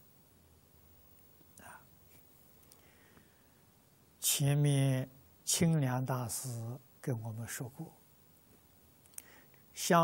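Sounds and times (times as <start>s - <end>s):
faint short breath: 2.7s - 3.6s, 9.2s - 9.6s.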